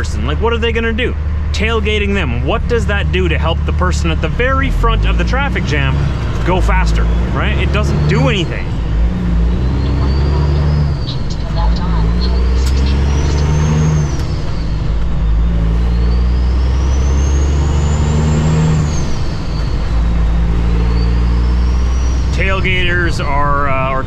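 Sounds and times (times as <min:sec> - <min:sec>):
diesel truck engine accelerating: 0:00.0 - 0:24.0.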